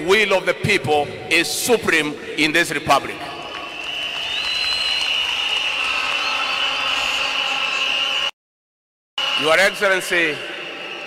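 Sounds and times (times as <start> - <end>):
large crowd cheering: 3.3 - 8.4, 9.2 - 11.0
steady shrill drone: 9.2 - 11.0.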